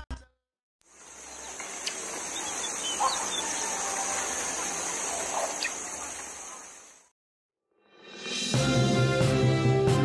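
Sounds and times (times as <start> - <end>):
small birds chirping: 0.9 - 7.0
steady high hiss: 0.9 - 7.0.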